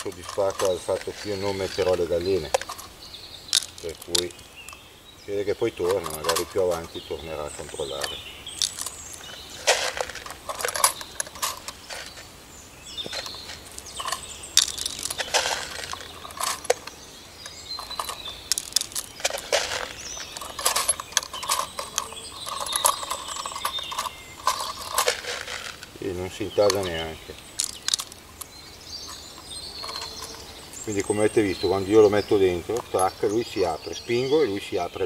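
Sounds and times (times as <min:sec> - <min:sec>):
hand seeder crunching into soil: 0:00.0 - 0:04.8, 0:05.8 - 0:12.4, 0:13.0 - 0:26.0, 0:26.6 - 0:31.2.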